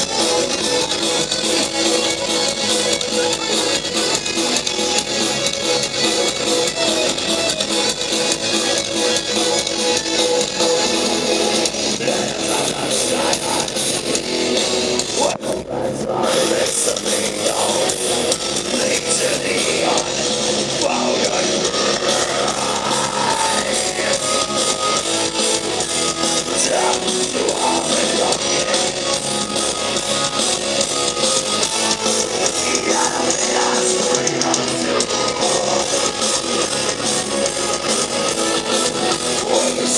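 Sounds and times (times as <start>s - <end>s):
heavy metal band playing live: 0.0s - 39.9s.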